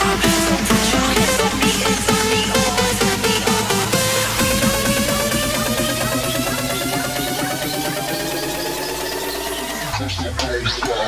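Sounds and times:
fast repeating dance beat: 0:00.0 - 0:11.0
rising synth tone: 0:00.0 - 0:11.0.

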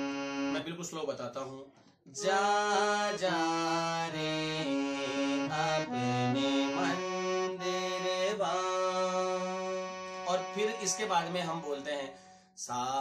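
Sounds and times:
harmonium playing slow phrase: 0:00.0 - 0:00.6, 0:02.2 - 0:12.1
man singing: 0:02.2 - 0:13.0.

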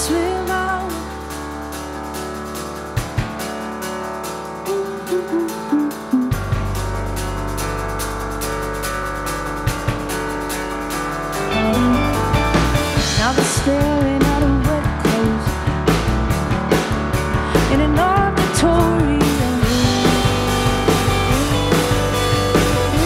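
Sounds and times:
live band playing: 0:04.3 - 0:07.7, 0:09.3 - 0:23.0.

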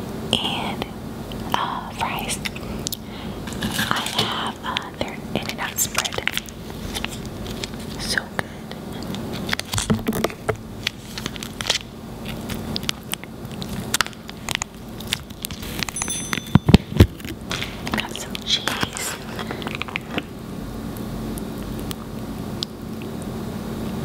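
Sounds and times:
paper sauce packet crinkling: 0:04.8 - 0:08.2, 0:09.0 - 0:16.0, 0:17.2 - 0:20.3.

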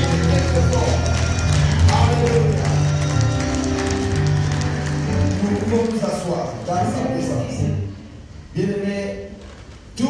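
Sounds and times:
electronic keyboard chords: 0:00.0 - 0:08.1.

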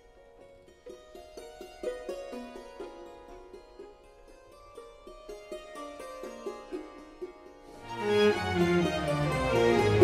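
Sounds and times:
hammered dulcimer notes: 0:00.0 - 0:10.0.

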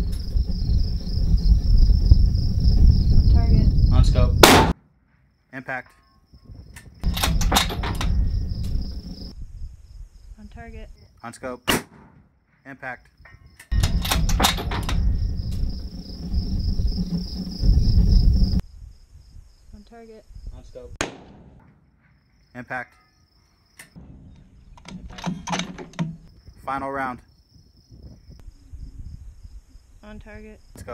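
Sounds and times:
wind rumble: 0:00.0 - 0:04.8, 0:06.3 - 0:11.1, 0:13.2 - 0:21.0, 0:24.0 - 0:30.9
rifle bolt metallic clacks: 0:06.8 - 0:08.1, 0:24.8 - 0:26.2
handling noise: 0:23.8 - 0:26.6.

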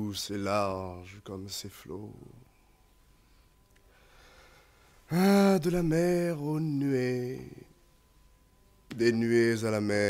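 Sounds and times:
old recording hiss: 0:00.0 - 0:10.0
thin steady tone: 0:00.0 - 0:10.0.

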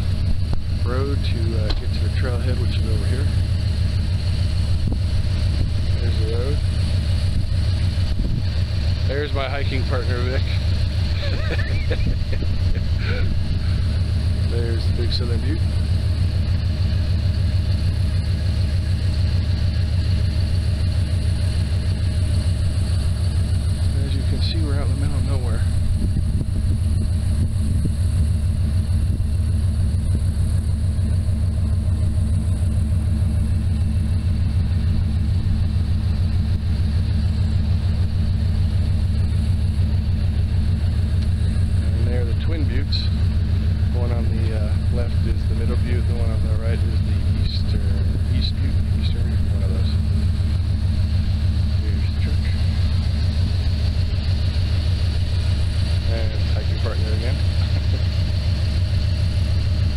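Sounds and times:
vehicle rumbling on dirt road: 0:00.0 - 0:59.9.

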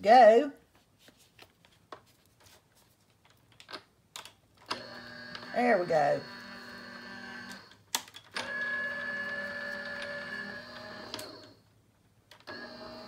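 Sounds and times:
die-cutting machine motor hum: 0:04.7 - 0:07.7, 0:08.4 - 0:11.6, 0:12.5 - 0:13.0.

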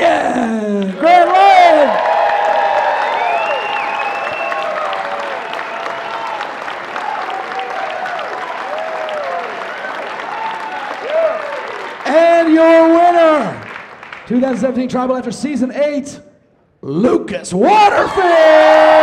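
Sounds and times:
audience applauding and cheering: 0:00.2 - 0:15.2.

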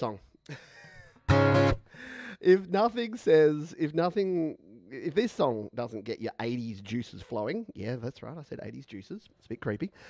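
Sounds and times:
acoustic guitar chord strummed: 0:01.3 - 0:01.8.

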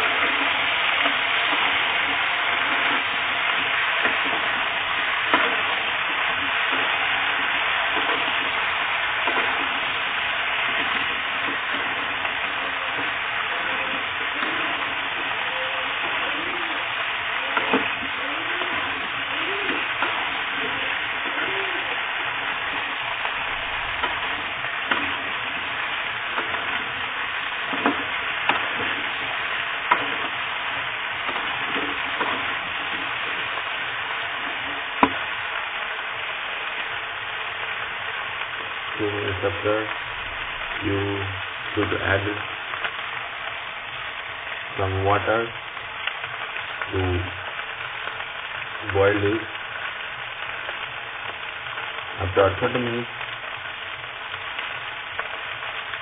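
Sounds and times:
vegetables sizzling in oil: 0:00.0 - 0:56.0.

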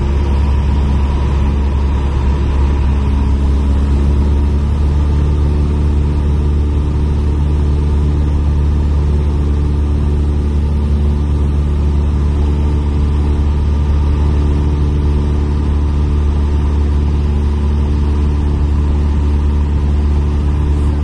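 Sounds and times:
aircraft engine and propeller droning: 0:00.0 - 0:21.0.

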